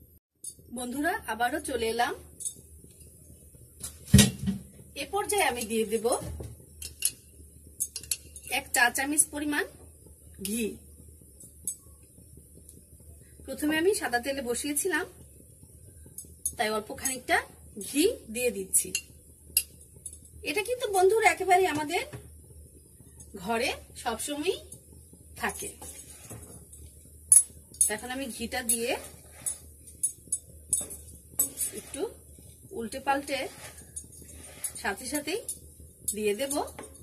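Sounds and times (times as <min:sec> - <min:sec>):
spoon tapping pan: 0:07.8 - 0:08.4
metal spoon scraping frying pan: 0:25.5 - 0:37.0.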